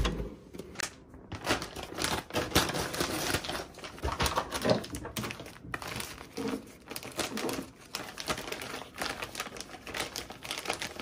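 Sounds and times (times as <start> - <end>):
plastic packaging crinkling: 0.7 - 11.0.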